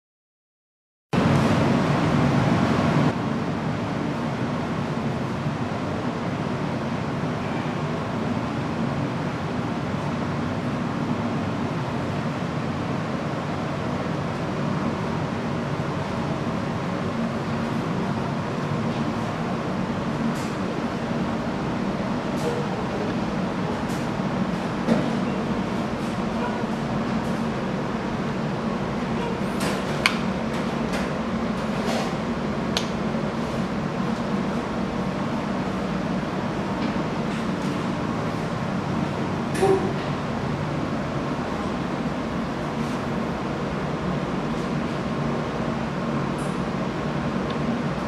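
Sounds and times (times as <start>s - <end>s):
workshop background rumble: 1.2s - 48.0s.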